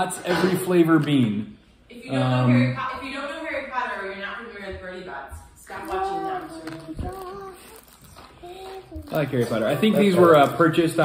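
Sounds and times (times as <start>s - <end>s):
girl singing held notes: 5.8s - 9.1s.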